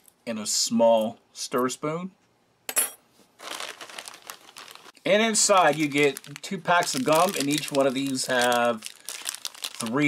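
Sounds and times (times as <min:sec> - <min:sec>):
plastic bag crinkling: 0:03.4 - 0:10.0.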